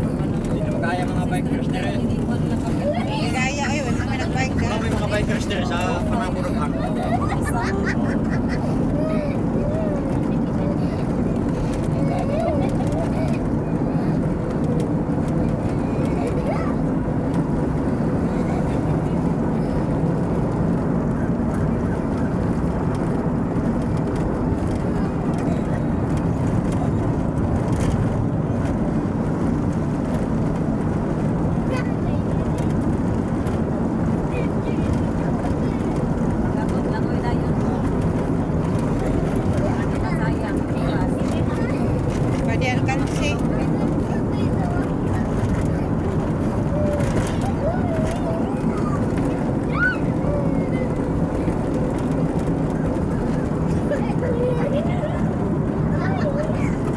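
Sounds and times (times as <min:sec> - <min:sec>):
vehicle engine and road noise: 0:00.0 - 0:56.9.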